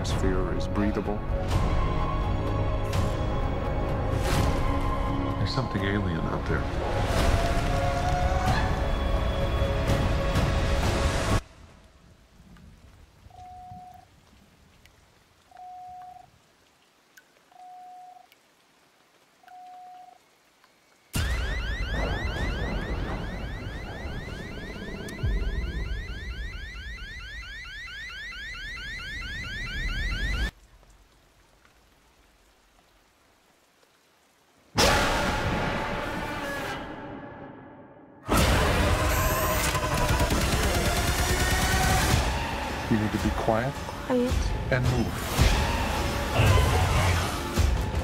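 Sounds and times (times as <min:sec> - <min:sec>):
heavy rain: 0:00.0 - 0:36.8, 0:38.3 - 0:48.0
rising electronic chirp: 0:21.2 - 0:30.5.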